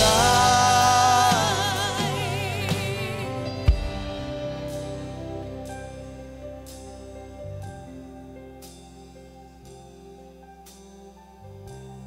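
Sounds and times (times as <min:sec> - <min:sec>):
singer holding long note: 0:00.0 - 0:05.6
band with keyboards playing: 0:00.0 - 0:12.0.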